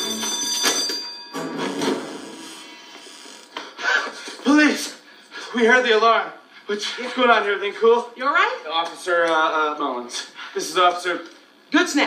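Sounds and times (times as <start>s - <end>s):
burglar alarm ringing: 0.0s - 3.8s.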